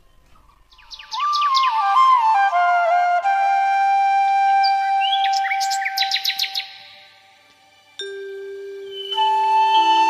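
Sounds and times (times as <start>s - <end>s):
birds chirping: 0.0s - 2.2s, 4.6s - 7.2s, 8.3s - 10.0s
flute music: 0.6s - 10.0s.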